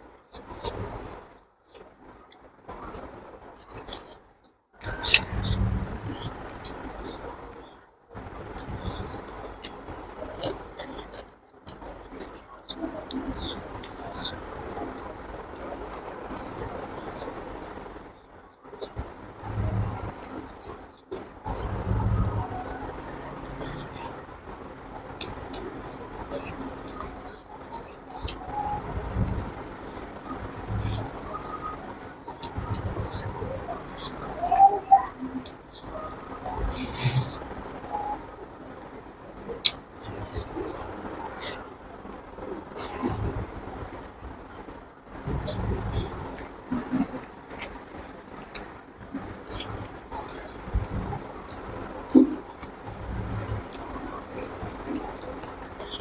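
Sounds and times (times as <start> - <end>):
low steady rumble: 0.0 - 56.0.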